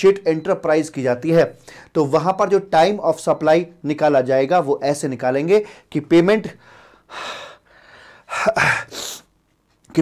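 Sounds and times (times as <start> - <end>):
man breathing: 6.6 - 9.3.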